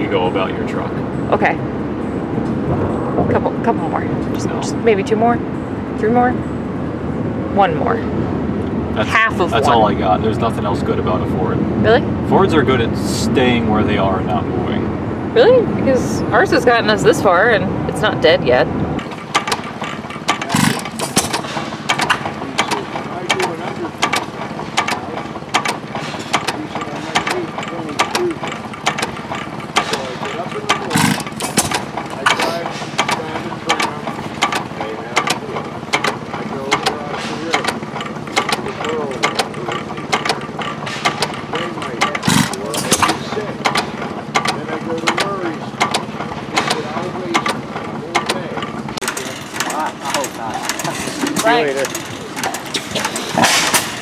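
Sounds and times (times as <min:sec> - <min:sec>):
hit-and-miss gas engine clicking: 0:16.6 - 0:54.0.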